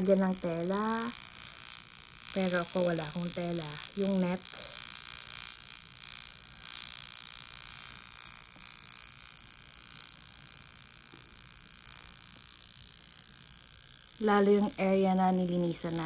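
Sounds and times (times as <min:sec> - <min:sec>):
facial wand high hiss: 0:00.0 - 0:05.8, 0:14.2 - 0:16.0
faint electric spark crackles: 0:00.0 - 0:16.0.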